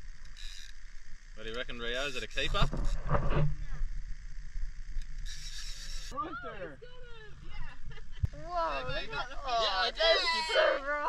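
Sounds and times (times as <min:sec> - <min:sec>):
fishing reel whirring: 0:00.0 - 0:08.4
excited high-pitched voices: 0:06.1 - 0:11.0.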